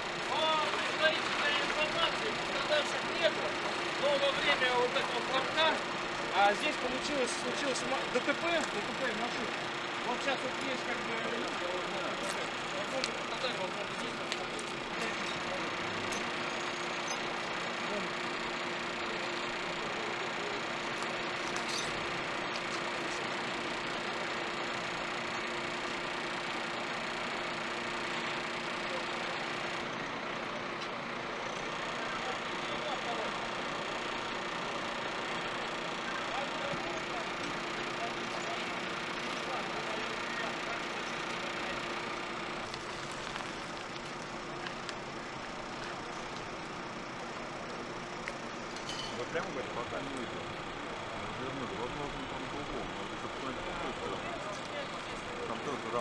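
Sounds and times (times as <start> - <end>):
heavy truck engine idling: 0.0 - 56.0
street noise: 0.0 - 56.0.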